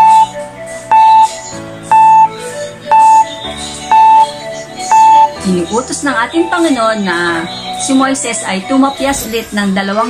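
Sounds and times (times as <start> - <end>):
countdown timer beeps: 0.0 - 5.5
light background music: 0.0 - 10.0.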